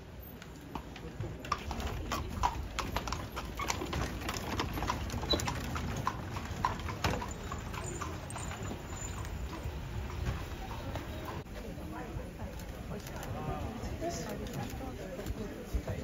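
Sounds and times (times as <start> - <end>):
horse hooves clip-clopping on street: 0.0 - 16.0.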